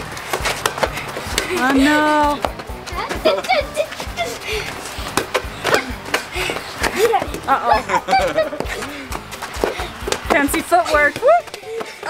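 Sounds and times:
children yelping: 0:02.9 - 0:05.0.

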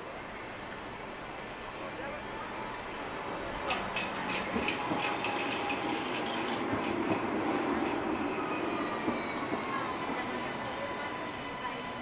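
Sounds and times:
tram wheel-on-rail rumble: 0:00.0 - 0:12.0.

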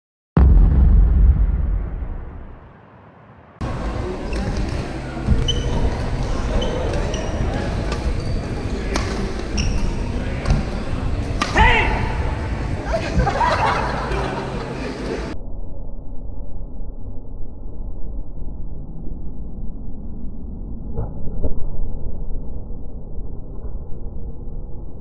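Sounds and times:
loud low rumble: 0:00.4 - 0:04.2, 0:09.9 - 0:25.0
sneakers squeaking on floor: 0:04.2 - 0:11.4
rackets hitting shuttlecock: 0:06.9 - 0:12.0
player shouting: 0:11.5 - 0:12.4.

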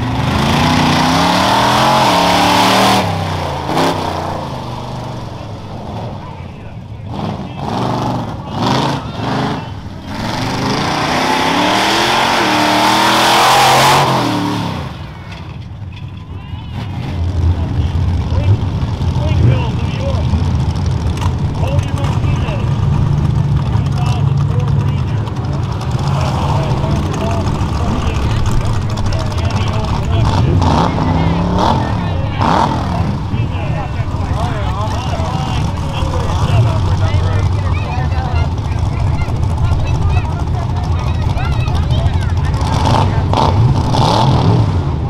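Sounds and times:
engine revving: 0:00.0 - 0:15.6, 0:16.7 - 0:45.0
truck engines running: 0:00.0 - 0:45.0
background voices: 0:21.1 - 0:43.4.

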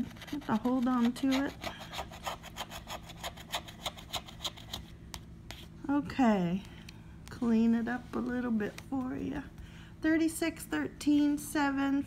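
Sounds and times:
scratching lottery ticket coating: 0:00.0 - 0:04.9.

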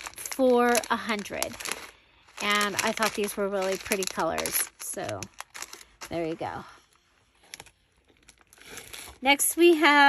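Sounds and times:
plastic bag crinkling: 0:00.0 - 0:09.4.

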